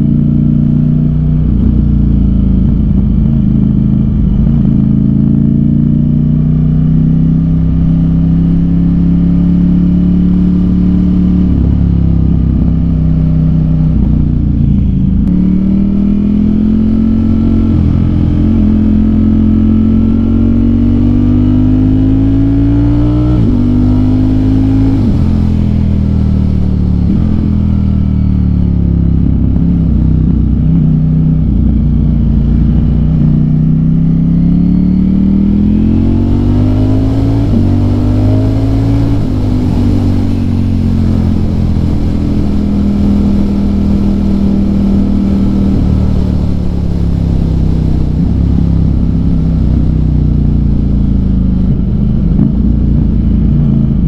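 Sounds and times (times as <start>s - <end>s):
motorcycle engine accelerating: 0.0s - 54.0s.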